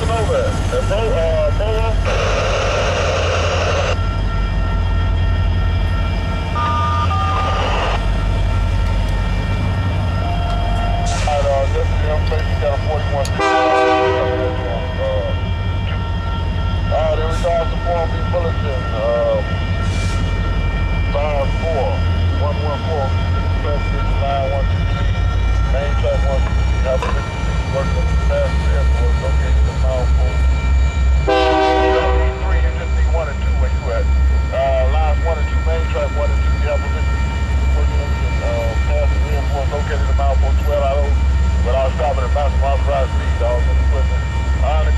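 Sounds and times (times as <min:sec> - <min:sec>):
freight cars rumbling: 0:00.0 - 0:04.0, 0:05.5 - 0:44.9
crossing bell ringing: 0:03.9 - 0:44.9
train horn chord: 0:13.2 - 0:14.8, 0:31.2 - 0:32.7.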